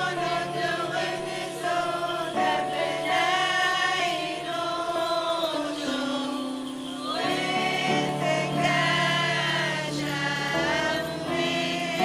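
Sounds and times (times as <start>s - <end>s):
church choir singing a hymn: 0.0s - 12.0s
keyboard accompaniment: 0.0s - 12.0s.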